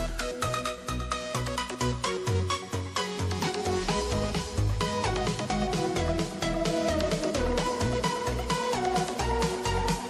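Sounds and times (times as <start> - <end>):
electronic music with steady beat: 0.0 - 10.0.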